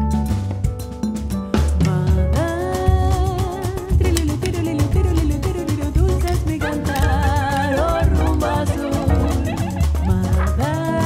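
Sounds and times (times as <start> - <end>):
double bass: 0.0 - 11.0
percussion groove: 0.0 - 11.0
melodic lead line: 6.6 - 10.8.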